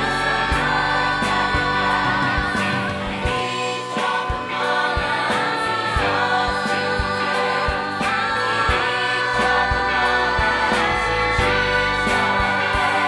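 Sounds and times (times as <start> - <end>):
ensemble singing with band: 0.0 - 13.0.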